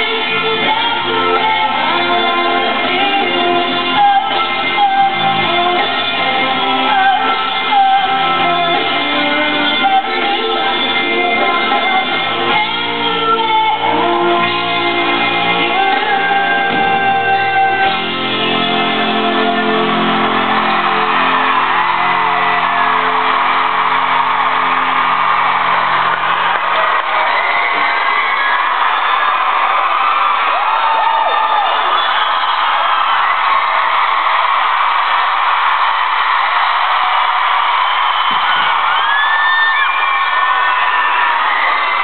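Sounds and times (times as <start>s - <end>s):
arena crowd cheering: 0.0s - 42.0s
high shrieks and whoops: 35.8s - 42.0s.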